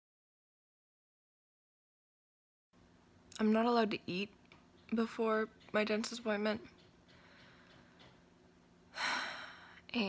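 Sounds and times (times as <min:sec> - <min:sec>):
woman speaking: 0:03.3 - 0:06.7.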